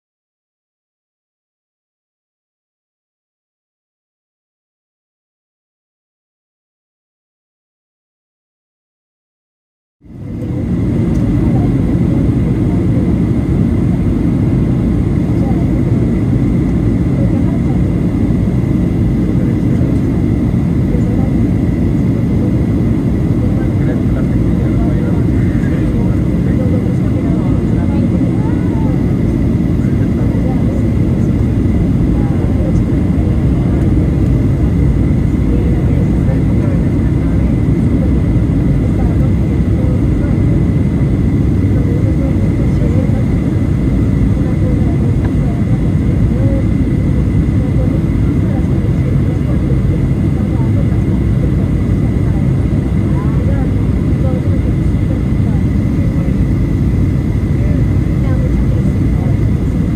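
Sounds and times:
jet engine and airflow rumble: 10.0s - 59.9s
thin steady whine: 10.1s - 59.9s.

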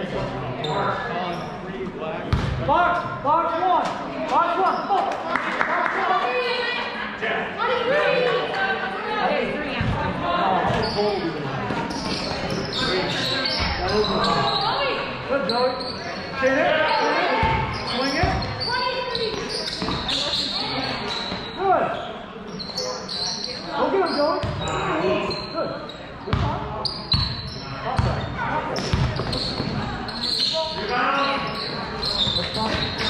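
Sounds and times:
voices echoing in gym: 0.0s - 33.0s.

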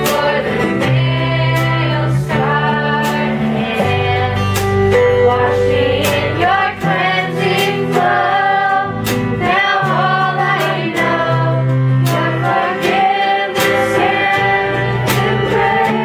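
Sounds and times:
bass guitar: 0.0s - 16.0s
male and female voices singing: 0.0s - 16.0s
strummed acoustic guitar: 0.0s - 16.0s.

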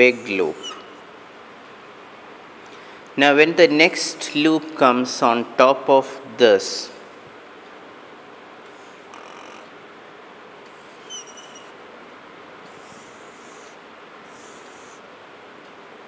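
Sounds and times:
steady background hiss: 0.0s - 16.0s
marker squeak: 0.5s - 1.0s, 10.8s - 11.8s, 12.7s - 15.0s
marker scratching on whiteboard: 10.7s - 11.7s, 12.7s - 15.0s.

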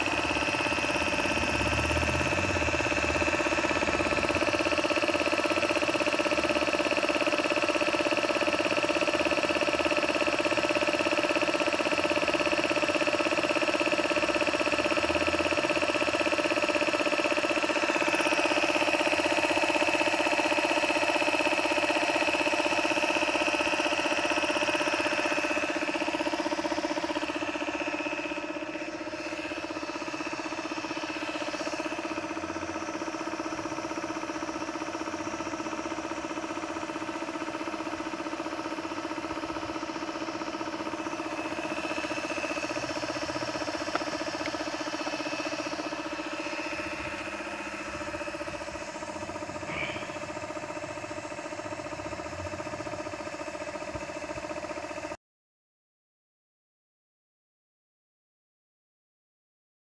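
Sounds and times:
air compressor motor whine: 0.0s - 55.2s.

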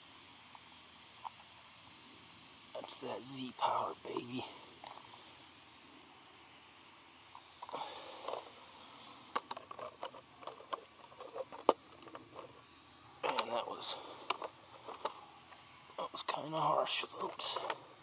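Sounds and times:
plastic rustle: 7.6s - 13.4s.

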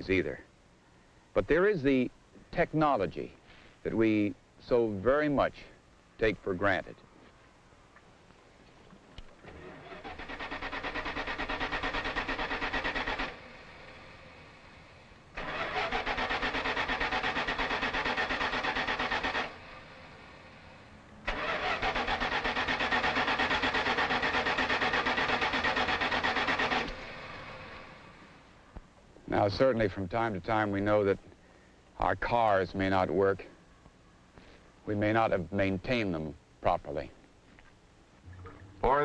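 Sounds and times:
car starter cranking engine: 9.4s - 14.0s, 15.4s - 19.8s, 21.3s - 28.0s.

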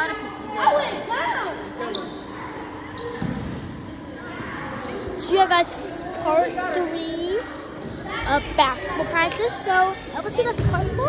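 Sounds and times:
basketball bouncing on gym floor: 10.4s - 11.0s.

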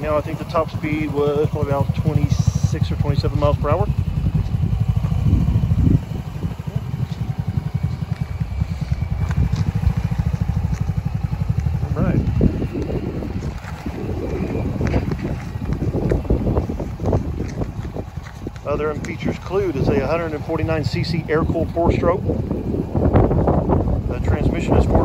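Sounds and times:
go-kart engine idling: 0.0s - 25.0s.

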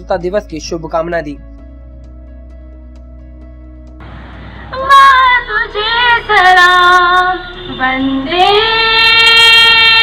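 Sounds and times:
woman singing high melody: 4.7s - 10.0s.

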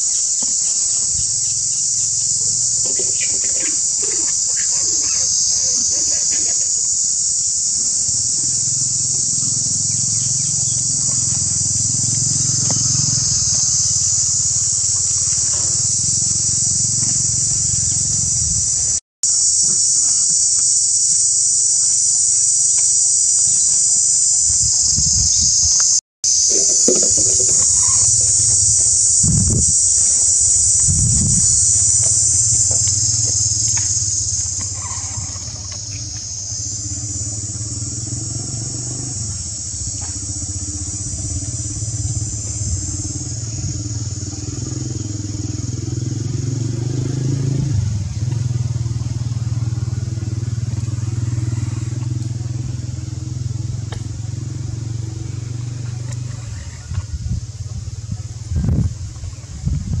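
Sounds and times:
high-pitched insect chorus: 0.0s - 60.0s
idling engine hum: 0.0s - 60.0s.

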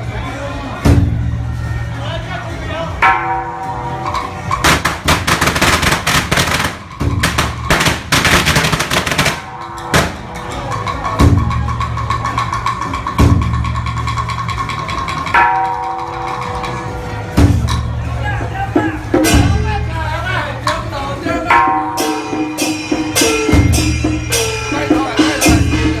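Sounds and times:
deep drums: 0.8s - 1.5s, 4.6s - 20.8s, 21.5s - 26.0s
firecrackers cracking: 4.5s - 10.5s.

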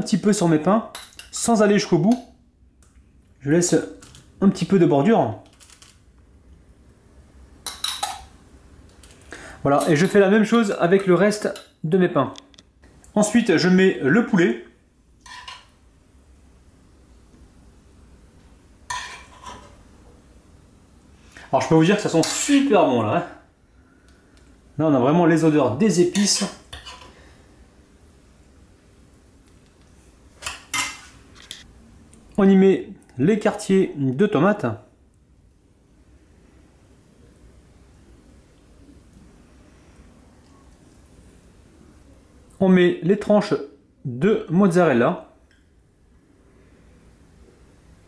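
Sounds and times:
quiet room hum: 0.0s - 48.0s
metal spoon scraping cookware: 15.2s - 15.7s, 18.9s - 19.8s, 26.1s - 27.1s.

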